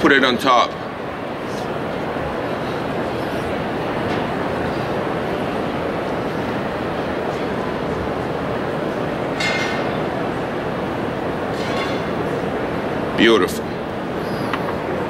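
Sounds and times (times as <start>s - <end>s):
exhibition hall din: 0.0s - 15.0s.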